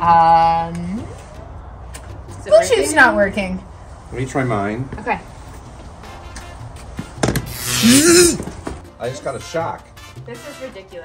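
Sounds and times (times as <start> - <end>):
light background music: 0.0 - 11.0
electric shock zap with yelp: 7.4 - 8.4.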